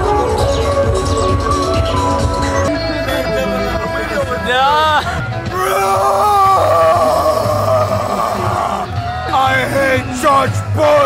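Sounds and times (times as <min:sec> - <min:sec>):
man yelling: 0:04.5 - 0:11.0.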